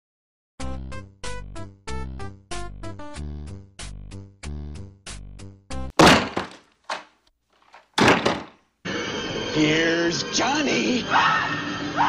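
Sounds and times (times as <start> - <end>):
heavy blows against door: 6.0 - 7.0, 7.8 - 8.5.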